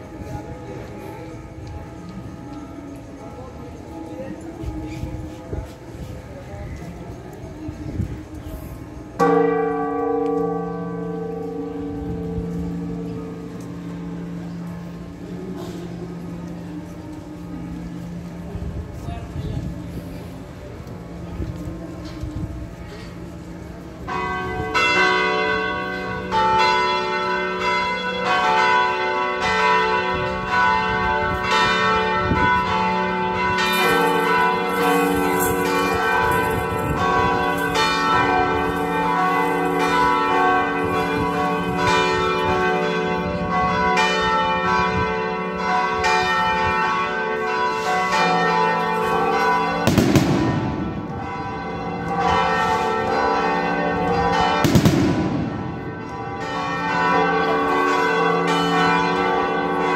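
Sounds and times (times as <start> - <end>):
cathedral bells ringing a peal: 0.0 - 59.9.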